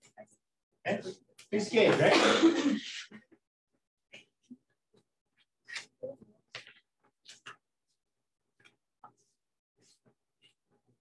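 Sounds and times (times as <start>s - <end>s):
person coughing: 2.0s - 3.1s.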